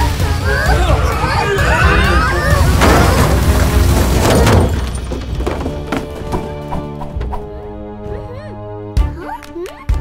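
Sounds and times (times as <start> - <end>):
music with light percussion: 8.8 - 10.0.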